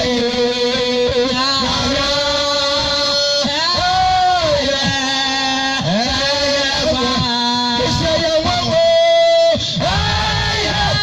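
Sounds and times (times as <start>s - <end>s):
man singing through pa system: 0.0s - 11.0s.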